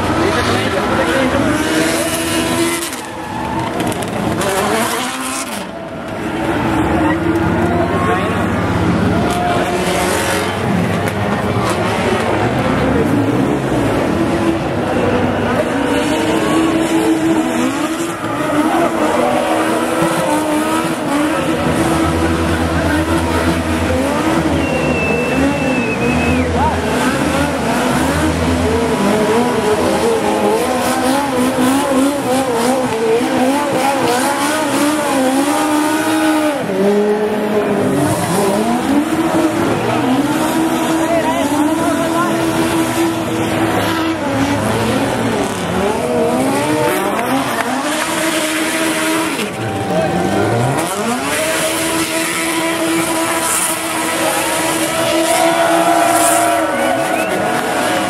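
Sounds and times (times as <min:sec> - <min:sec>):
motorcycle engines revving: 0:00.0 - 0:58.0.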